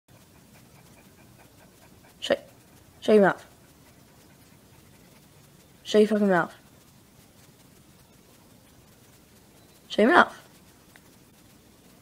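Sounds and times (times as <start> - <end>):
dog panting: 0.1 - 12.0.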